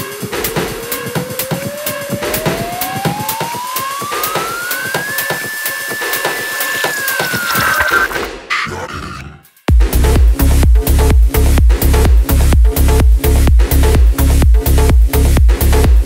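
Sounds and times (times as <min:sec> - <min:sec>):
steady electronic beat: 0:00.0 - 0:08.3, 0:09.7 - 0:16.0
rising synth tone: 0:01.2 - 0:08.3.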